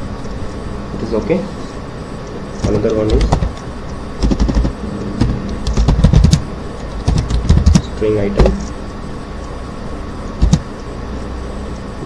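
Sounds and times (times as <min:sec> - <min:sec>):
steady low hum: 0:00.0 - 0:12.0
computer keyboard typing: 0:02.6 - 0:08.7, 0:10.4 - 0:10.8.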